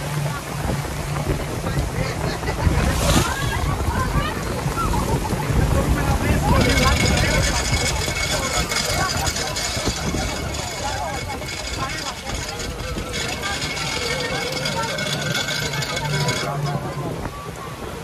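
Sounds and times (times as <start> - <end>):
heavy rain: 0.0 - 12.0
background voices: 0.0 - 17.9
choppy water: 0.0 - 18.0
wind buffeting microphone: 0.0 - 18.0.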